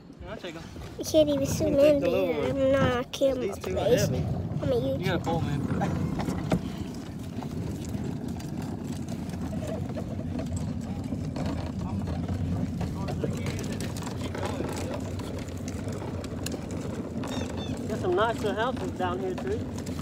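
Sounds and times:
plastic toy wheels rolling on asphalt: 0:00.2 - 0:20.0.

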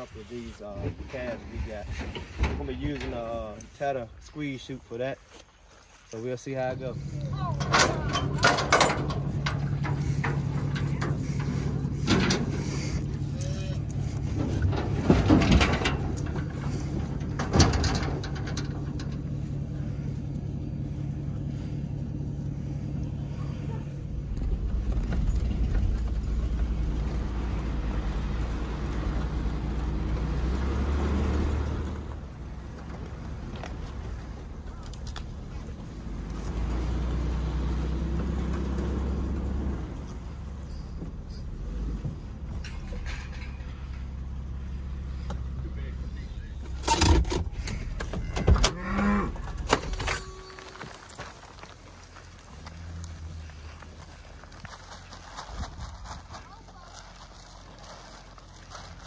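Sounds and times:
engine hum: 0:00.0 - 0:59.0
truck engine rumble: 0:06.1 - 0:59.0
trailer gate clanking: 0:07.3 - 0:19.8, 0:41.4 - 0:45.6, 0:46.3 - 0:51.2.

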